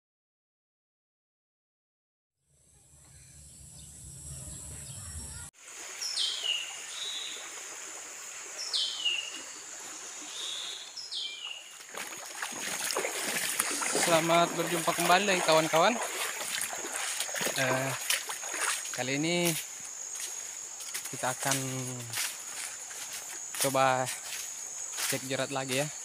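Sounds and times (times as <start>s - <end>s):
low rumble sound effect: 2.5s - 5.5s
high insect whine: 2.5s - 26.0s
running water rushing: 5.6s - 26.0s.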